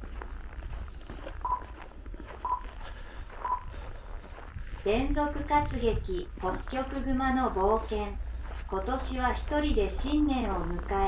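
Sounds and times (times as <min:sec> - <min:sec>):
footsteps crunching on snow: 0:00.0 - 0:11.0
short electronic beeps: 0:01.4 - 0:01.8, 0:02.4 - 0:02.7, 0:03.4 - 0:03.7.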